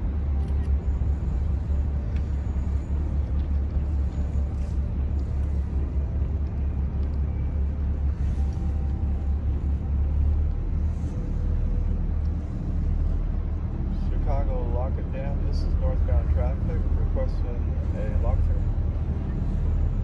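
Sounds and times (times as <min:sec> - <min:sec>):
boat engine rumbling: 0:00.0 - 0:20.0.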